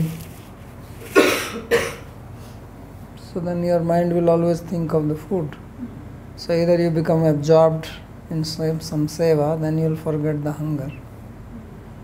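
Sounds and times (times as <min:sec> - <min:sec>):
man coughing: 0:01.1 - 0:02.1.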